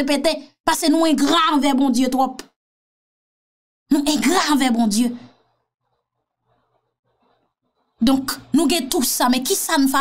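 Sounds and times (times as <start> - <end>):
person speaking: 8.0 - 10.0.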